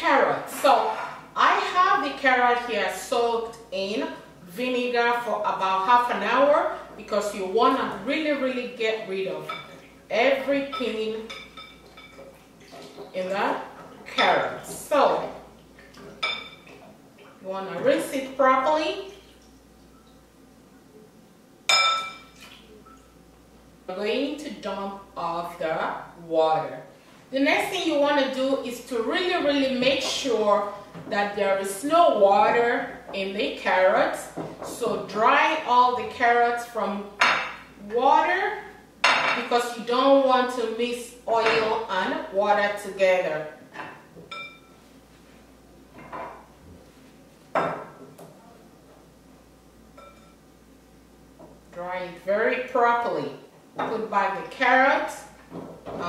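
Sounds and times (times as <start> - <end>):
glass bowl clink: 10.7 - 12.2, 16.2 - 16.8, 21.7 - 23.1, 44.3 - 44.8, 50.0 - 50.4.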